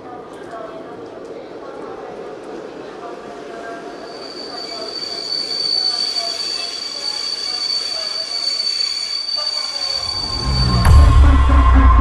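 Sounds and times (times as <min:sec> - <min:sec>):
high-pitched electronic whine: 0:08.4 - 0:12.0.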